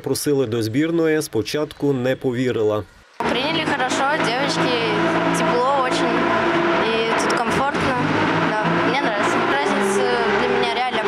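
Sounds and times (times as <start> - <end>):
steady low hum: 3.2 - 11.0
girl speaking: 3.3 - 6.2, 6.8 - 11.0.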